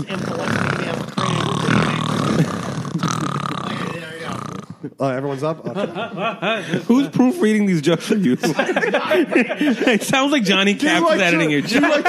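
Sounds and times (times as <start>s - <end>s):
laughter: 5.6s - 6.9s, 8.0s - 10.2s.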